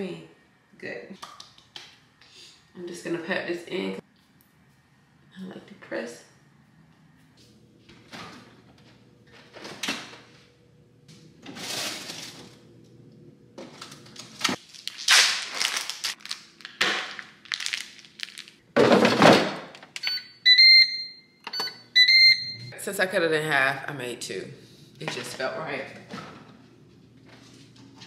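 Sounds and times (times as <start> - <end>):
plastic bag rustling: 11.5 - 12.6, 13.7 - 18.6
things being moved and set down: 18.8 - 19.9
air fryer beeps: 20.0 - 22.8.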